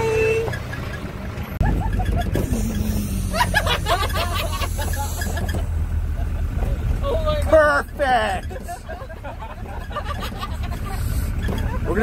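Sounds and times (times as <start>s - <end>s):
truck engine rumbling: 0.0s - 12.0s.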